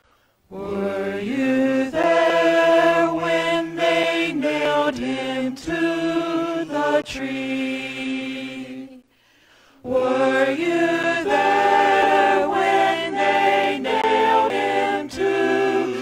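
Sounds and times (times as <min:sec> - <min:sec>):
vocal ensemble singing a cappella: 0:00.5 - 0:16.0.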